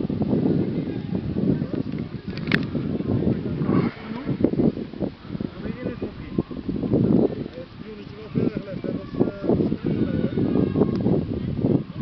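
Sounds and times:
wind buffeting microphone: 0.0 - 12.0
distant children's voices: 0.6 - 12.0.

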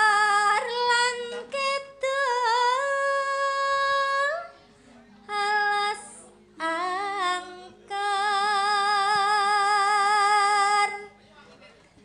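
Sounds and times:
woman singing into a microphone: 0.0 - 4.6, 5.2 - 11.1.

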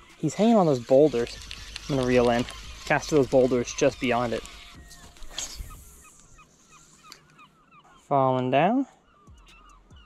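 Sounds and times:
reel chirping: 0.0 - 8.5.

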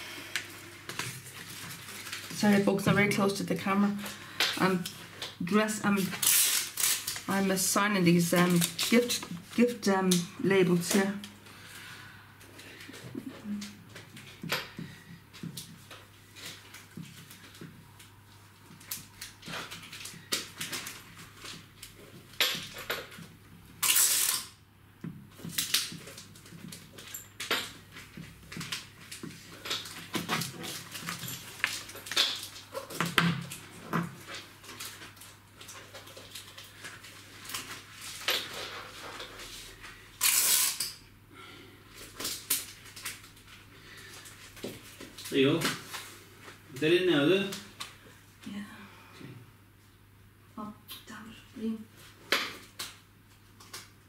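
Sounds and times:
paper rustling and crinkling: 0.8 - 3.4, 25.4 - 40.0.

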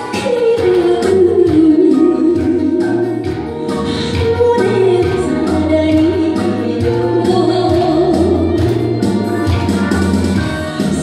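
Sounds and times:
instrumental accompaniment: 0.0 - 11.0
woman singing through microphone: 0.0 - 11.0.

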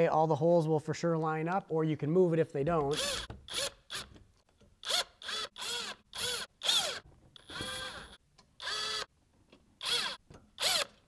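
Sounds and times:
cordless driver motor whirring: 4.8 - 9.1, 9.8 - 11.0.

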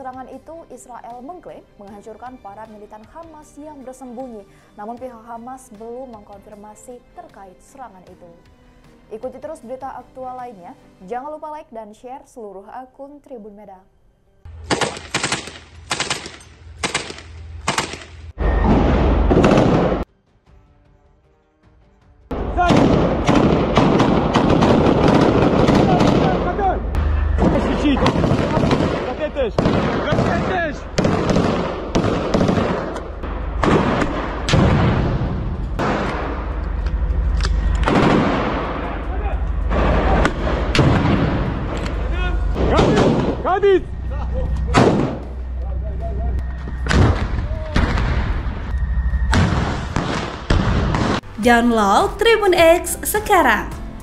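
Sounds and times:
automatic rifle fire: 14.6 - 18.2, 19.3 - 20.0, 22.6 - 26.5, 28.0 - 36.4, 37.8 - 38.8
gunshots with echo: 14.6 - 20.1, 22.3 - 36.6, 37.8 - 39.1, 39.7 - 43.4, 44.7 - 45.2, 49.3 - 51.3
low rumble of combat: 22.4 - 45.4.

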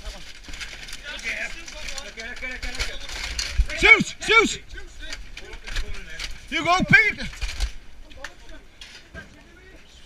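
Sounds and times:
debris clicking and knocking: 0.0 - 4.0, 5.0 - 9.4
men talking in background: 0.0 - 10.0.

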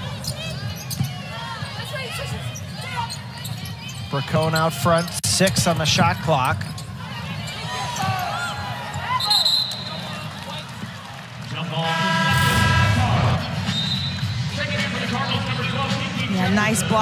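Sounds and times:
sneakers squeaking on court: 0.0 - 10.2
crowd noise: 0.0 - 17.0.

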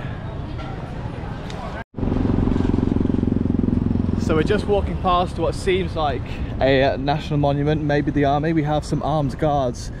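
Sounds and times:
pulsing engine drone: 2.0 - 5.3.

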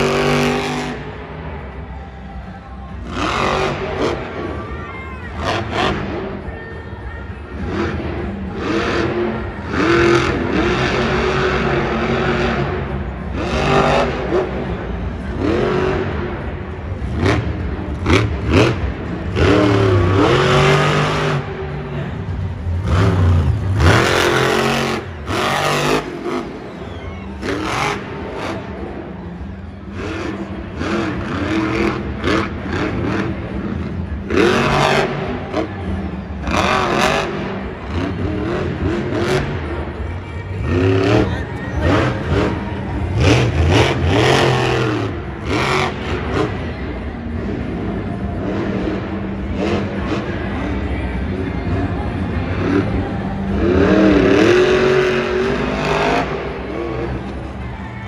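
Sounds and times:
monster truck engine revving: 0.0 - 6.5, 7.3 - 58.0.

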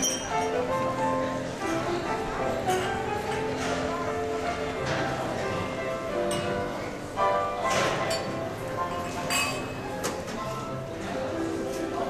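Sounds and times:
glassware clinking: 0.0 - 0.6, 7.7 - 10.2
murmur of voices: 0.0 - 12.0.

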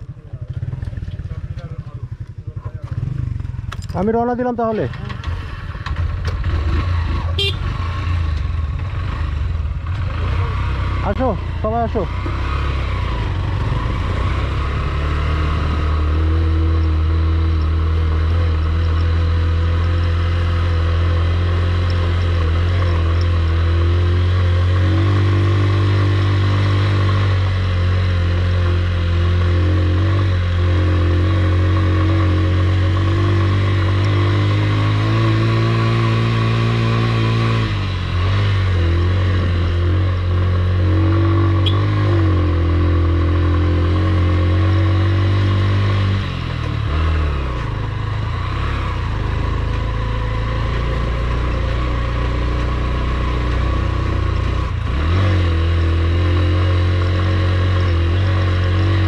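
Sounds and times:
motorcycle engine under load: 0.0 - 59.0.

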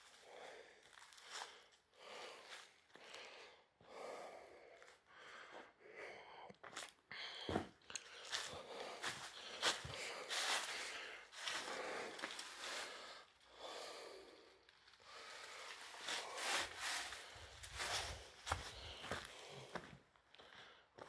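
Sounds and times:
person breathing heavily: 0.0 - 21.0.

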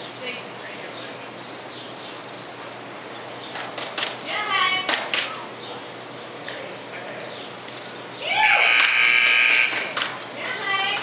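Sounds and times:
timer buzzer: 8.4 - 10.1.

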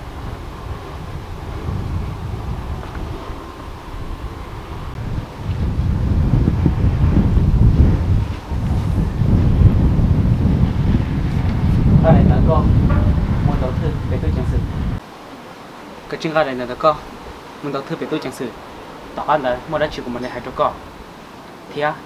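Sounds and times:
wind buffeting microphone: 0.0 - 21.7.

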